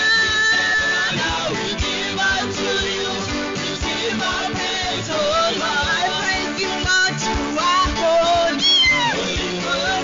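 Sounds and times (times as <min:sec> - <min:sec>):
band with steady drum beat: 0:00.0 - 0:10.0
woman singing into a microphone: 0:04.1 - 0:10.0.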